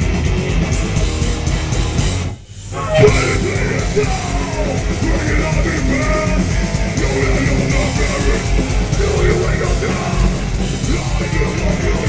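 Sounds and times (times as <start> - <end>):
distorted electric guitars: 0.0 - 12.0
drums: 0.0 - 12.0
harsh vocal into microphone: 2.8 - 12.0.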